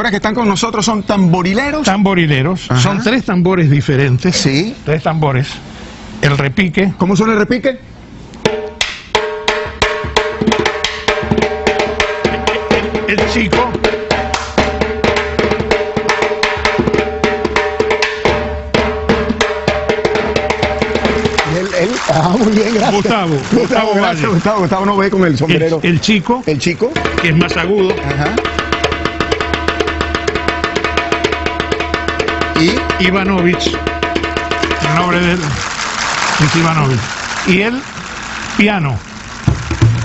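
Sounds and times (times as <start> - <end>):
hand drum strokes: 9.5 - 24.9, 26.9 - 40.0.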